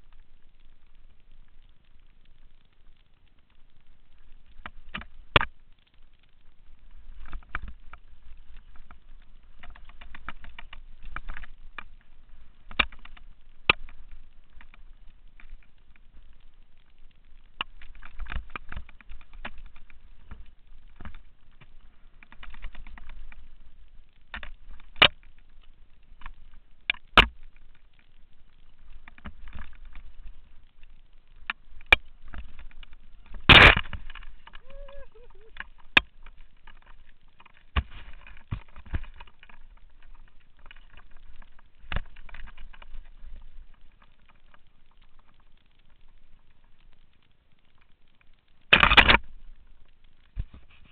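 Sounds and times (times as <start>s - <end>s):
mountain bike rattling: 6.4s - 47.1s.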